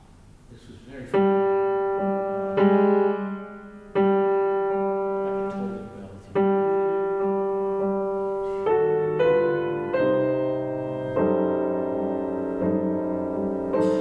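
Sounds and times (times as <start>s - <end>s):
grand piano chords: 0.0s - 14.0s.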